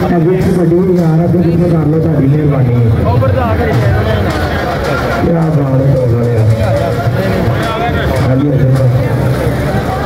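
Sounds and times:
crowd noise: 0.0 - 10.0
men talking: 0.0 - 10.0.

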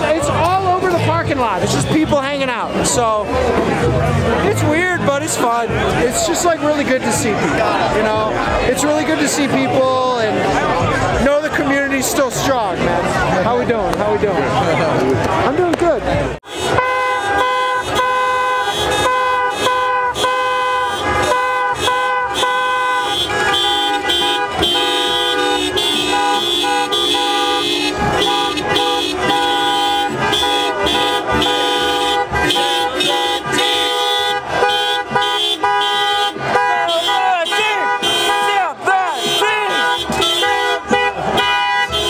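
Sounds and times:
musical vehicle horn playing: 16.4 - 42.0.

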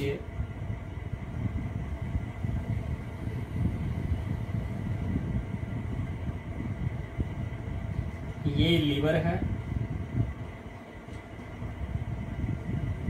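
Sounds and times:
low room rumble: 0.0 - 13.0.

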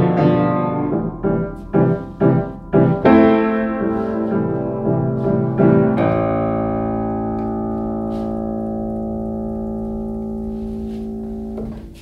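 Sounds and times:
jazz piano chord ringing: 0.0 - 12.0.

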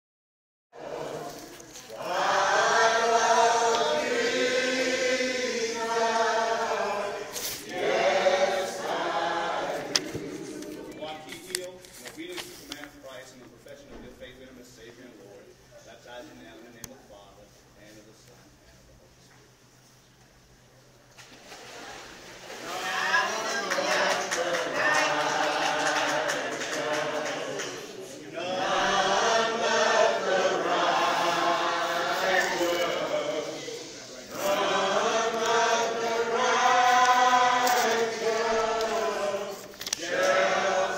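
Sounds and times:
group of voices singing: 0.8 - 11.0, 22.6 - 40.9.

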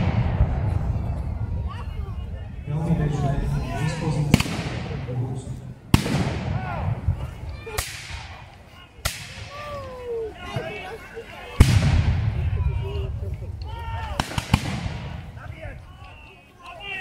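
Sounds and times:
musket shots with echo: 4.3 - 5.0, 5.9 - 6.7, 14.2 - 15.3.

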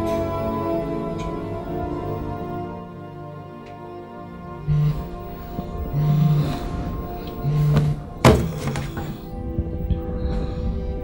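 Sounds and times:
film music: 0.0 - 11.0.

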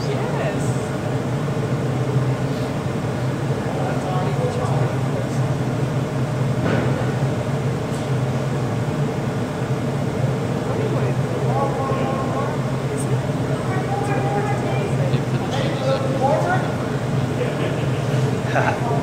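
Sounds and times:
furnace and exhaust hood drone: 0.0 - 19.0
faint voices: 10.3 - 19.0.

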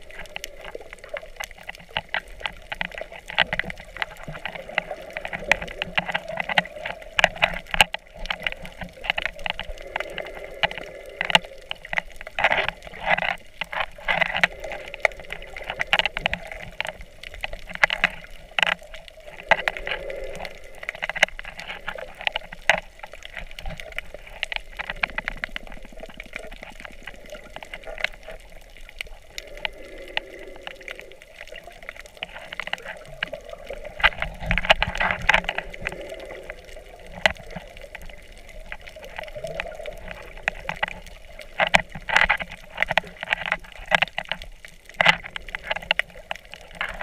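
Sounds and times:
bubbling: 0.0 - 47.0
muffled underwater wash: 0.0 - 47.0
sharp underwater clicks: 0.0 - 47.0.

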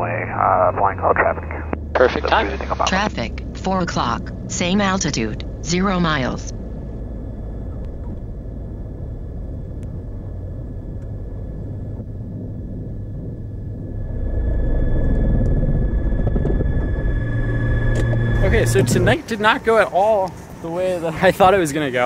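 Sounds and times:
piston aircraft engine rumbling: 0.0 - 22.0.

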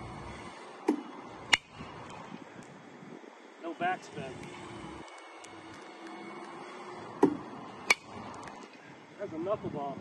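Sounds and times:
pitching machine humming: 0.0 - 10.0
bat cracking ball: 0.8 - 1.8, 7.1 - 8.5
pitching machine thump: 7.2 - 8.1.

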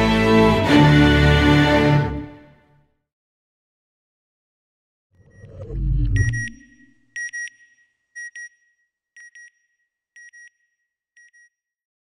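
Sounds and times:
high electronic beeps: 5.2 - 8.5
deep low rumble: 5.3 - 6.9.

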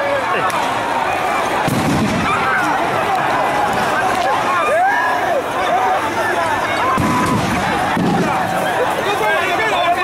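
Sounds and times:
crowd calling and shouting: 0.0 - 10.0.

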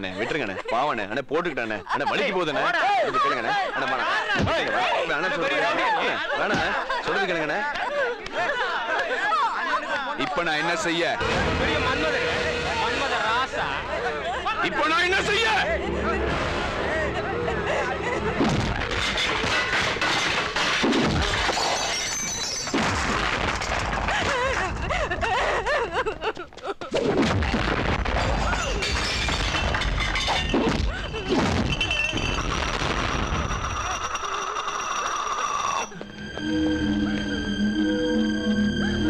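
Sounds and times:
dramatic background music: 15.3 - 18.8, 36.0 - 39.0
low held synth notes: 15.6 - 18.4, 35.9 - 39.0.

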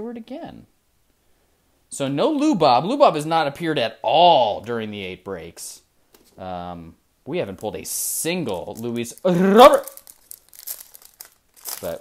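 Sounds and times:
foil wrapper crinkling: 7.6 - 12.0.

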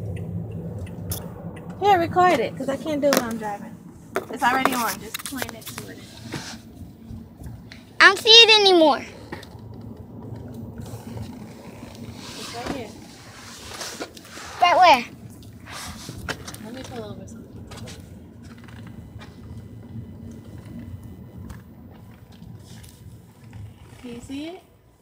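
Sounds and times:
car cabin engine and road rumble: 0.0 - 24.6.

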